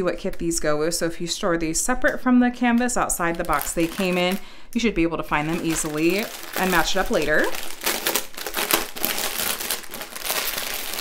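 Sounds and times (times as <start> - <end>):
plastic bags crinkling: 2.6 - 11.0.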